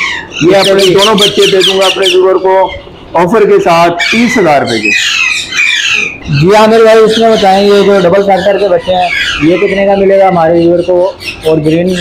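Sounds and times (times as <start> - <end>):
parrots squawking: 0.0 - 12.0.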